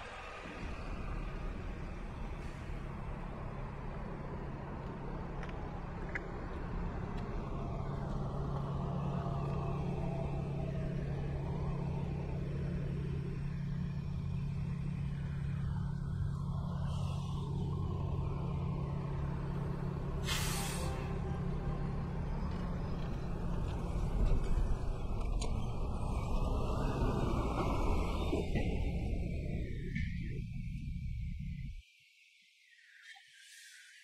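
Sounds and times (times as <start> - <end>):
bus engine humming: 0.0 - 31.8
air brakes hissing: 20.2 - 21.2.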